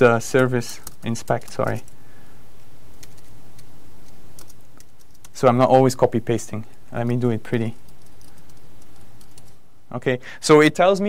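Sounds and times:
steady background hiss: 0.0s - 11.0s
typing on laptop keyboard: 3.0s - 5.4s, 7.8s - 9.6s.

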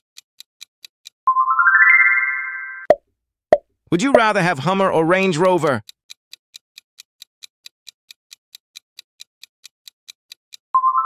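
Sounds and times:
bright rising chime: 1.3s - 2.9s.

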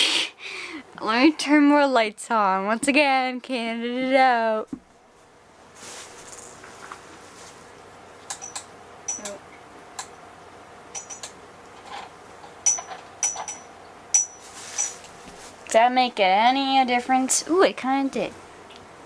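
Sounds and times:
faint background hum: 0.0s - 19.0s.

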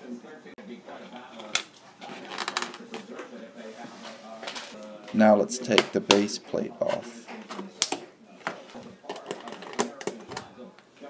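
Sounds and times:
plastic clicks and rattles: 9.1s - 10.5s.

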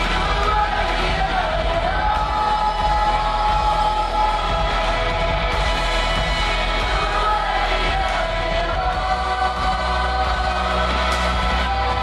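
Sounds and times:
drum kit: 0.0s - 12.0s
women singing: 0.0s - 12.0s
worship band playing: 0.0s - 12.0s.

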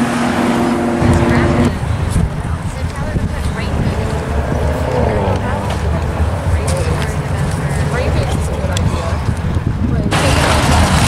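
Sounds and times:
car engine exhaust rumble: 0.0s - 11.0s.

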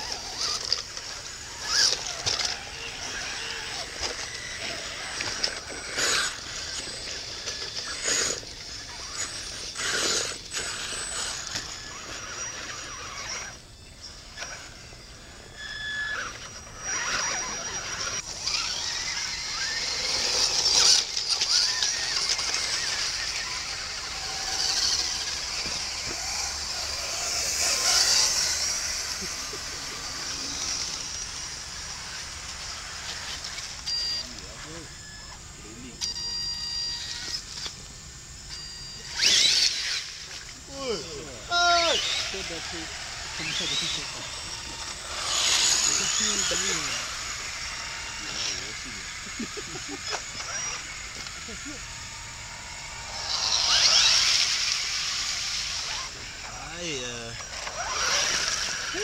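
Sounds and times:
electric motors whining: 0.0s - 59.0s
voices talking: 0.0s - 59.0s.

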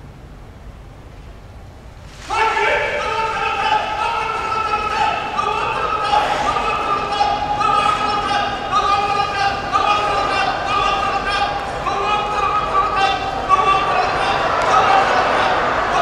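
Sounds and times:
referee's high drawn-out calls: 2.1s - 16.0s.

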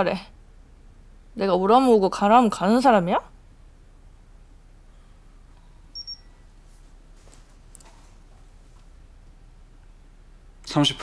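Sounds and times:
thermometer beeping: 5.9s - 6.4s.

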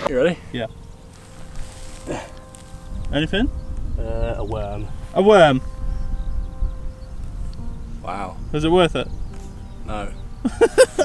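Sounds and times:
wind rumble on microphone: 0.0s - 11.0s
rock lifted from long grass: 1.1s - 2.9s.

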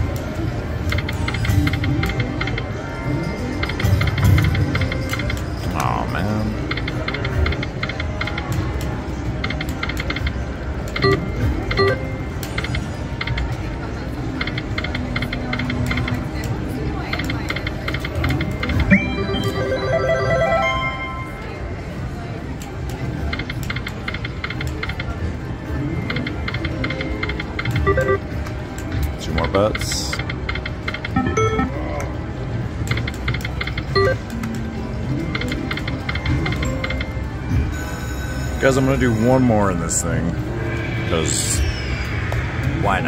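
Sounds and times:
slot machine tones and jingles: 1.0s - 7.7s, 10.9s - 12.9s, 17.4s - 22.0s, 26.0s - 28.4s, 29.4s - 31.9s, 33.4s - 34.3s, 35.1s - 43.0s
casino din of voices: 14.2s - 22.5s.

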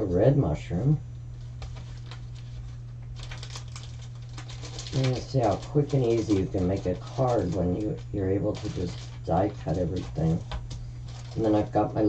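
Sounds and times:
steady low hum: 0.0s - 12.0s
plastic packaging crinkling: 1.3s - 12.0s.

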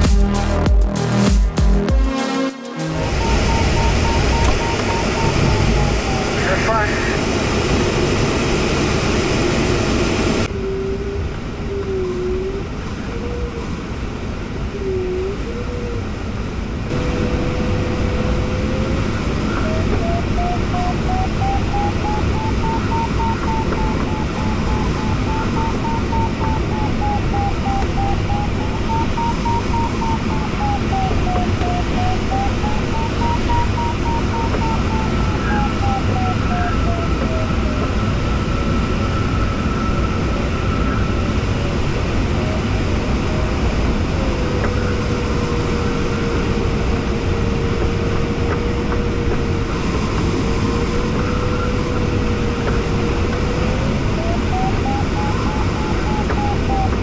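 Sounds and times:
rush of air over cockpit: 1.8s - 57.0s
variometer beeping: 3.0s - 6.8s, 19.4s - 38.0s.

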